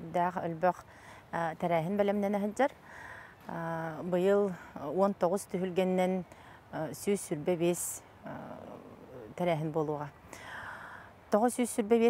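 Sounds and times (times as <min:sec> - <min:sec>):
woman speaking: 0:00.0 - 0:02.8, 0:03.4 - 0:10.2, 0:11.3 - 0:12.0
noisy breathy sound: 0:10.3 - 0:11.2.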